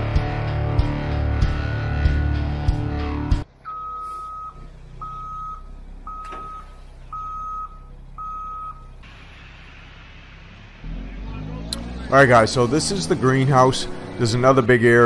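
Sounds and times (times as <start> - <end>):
intro music: 0.0 - 15.0
low engine rumble: 0.0 - 15.0
reversing alarm beeps: 3.7 - 8.9.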